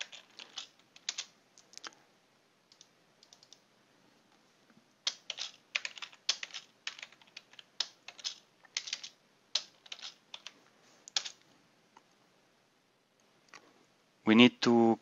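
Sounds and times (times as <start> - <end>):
typing on computer keyboard: 0.0 - 1.3, 2.7 - 3.6, 5.0 - 11.4.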